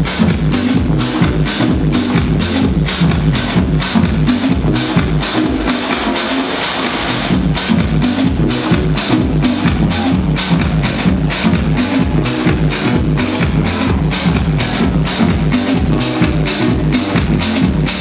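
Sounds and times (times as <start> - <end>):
electronic house music: 0.0 - 18.0.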